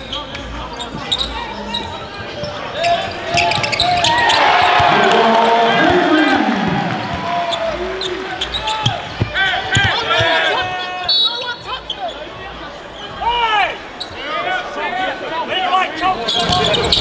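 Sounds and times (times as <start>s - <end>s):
sneakers squeaking on court: 0.0s - 13.2s, 16.3s - 17.0s
crowd cheering: 3.4s - 11.4s
basketball bouncing: 8.4s - 10.5s.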